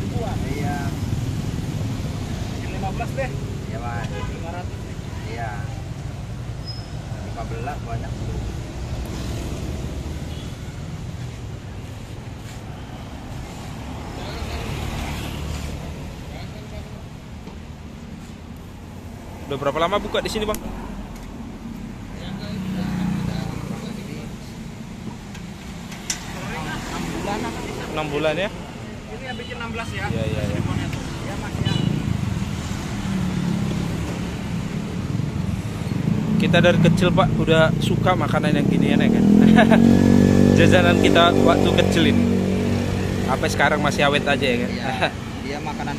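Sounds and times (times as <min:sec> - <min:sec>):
road traffic rumble: 0:00.0 - 0:45.9
motor vehicle passing by: 0:08.2 - 0:16.8, 0:19.3 - 0:24.3, 0:25.6 - 0:28.4, 0:29.9 - 0:45.9.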